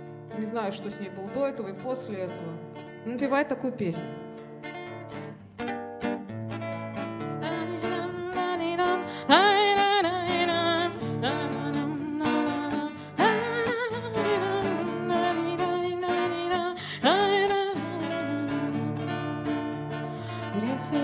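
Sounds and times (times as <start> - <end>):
acoustic guitar: 0.0 - 21.0
woman singing: 7.3 - 21.0.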